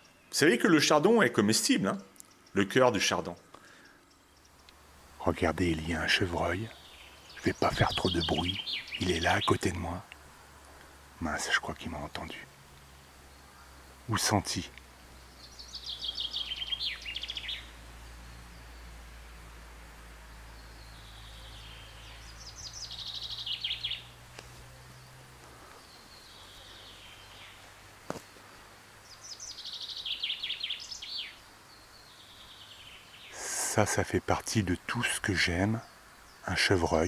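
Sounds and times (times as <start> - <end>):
songbird singing: 0.0 - 37.0.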